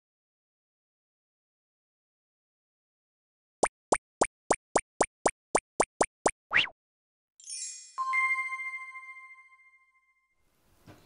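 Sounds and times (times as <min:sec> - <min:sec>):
rising popping sounds: 0:03.6 - 0:06.7
sparkling shimmer: 0:07.4 - 0:08.5
ringing chime: 0:07.4 - 0:10.4.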